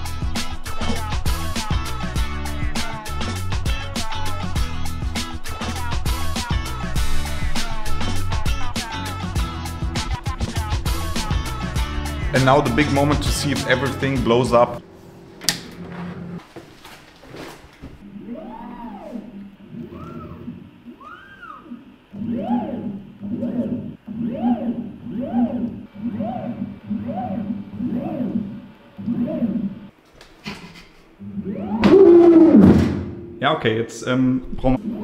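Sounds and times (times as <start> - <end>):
steady low hum: 17.9 - 35.0
robotic arm motor whine: 18.0 - 29.9, 31.2 - 33.4.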